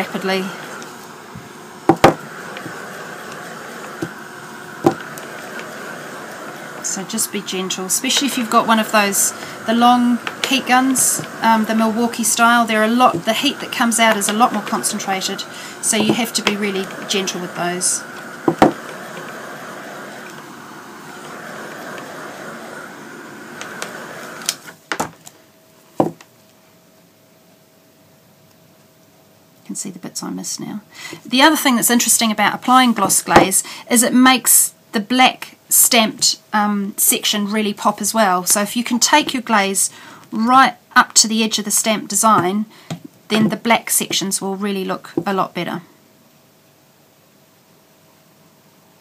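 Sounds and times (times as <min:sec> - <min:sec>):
heat gun blowing: 0:00.0 - 0:24.8
steady hum: 0:00.0 - 0:27.9
canvas knocking on a table: 0:01.9 - 0:02.2, 0:26.0 - 0:26.2.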